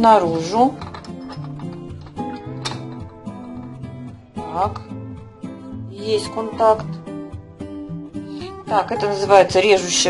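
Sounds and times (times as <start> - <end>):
background music with plucked notes: 0.0 - 10.0.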